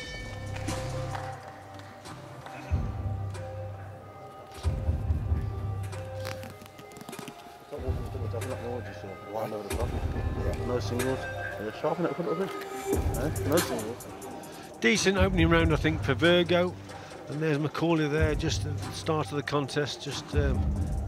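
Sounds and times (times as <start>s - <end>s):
indistinct voices talking: 7.7s - 21.0s
arena music with heavy bass beat: 13.0s - 14.2s.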